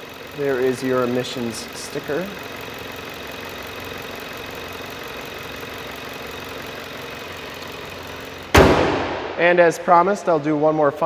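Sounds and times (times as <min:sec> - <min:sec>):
car engine idling: 0:00.0 - 0:11.0
car hood slamming shut: 0:08.5 - 0:09.4.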